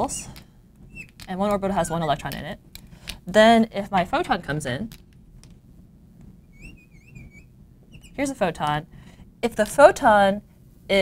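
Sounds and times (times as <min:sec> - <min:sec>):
marker squeaking on glass: 0:00.8 - 0:02.3, 0:06.4 - 0:08.4.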